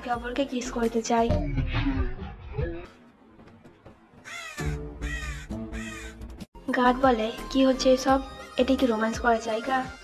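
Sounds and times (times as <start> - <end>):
background music with held notes: 3.4 - 10.0
crow cawing: 4.2 - 6.3.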